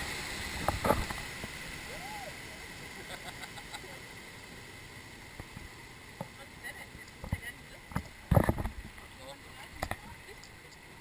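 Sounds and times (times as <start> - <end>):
rushing water: 0.0 - 11.0
boat knocks and splashes: 7.2 - 10.1.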